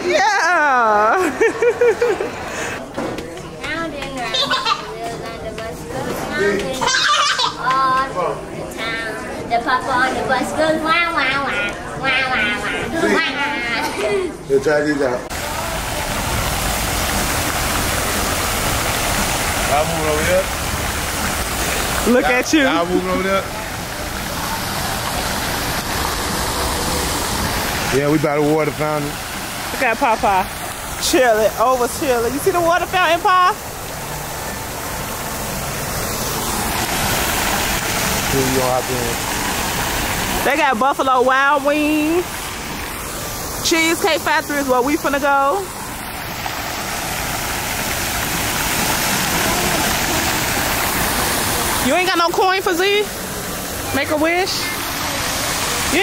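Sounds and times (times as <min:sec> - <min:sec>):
fountain jets splashing into basin: 0:00.0 - 0:56.0.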